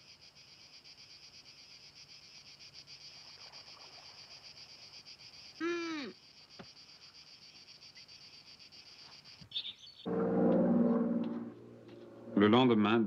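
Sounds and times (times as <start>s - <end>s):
insects chirring: 0.0s - 12.4s.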